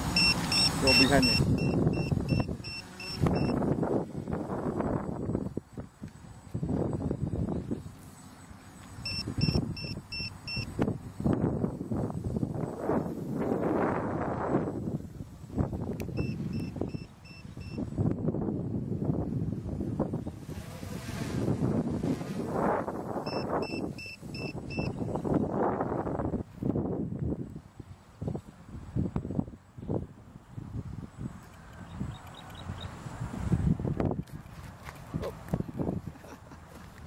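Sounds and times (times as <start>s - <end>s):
wind noise on microphone: 0.0s - 8.2s, 8.8s - 37.0s
high-pitched alarm beeps: 0.1s - 3.6s, 9.0s - 10.8s, 16.2s - 17.9s, 23.2s - 25.1s.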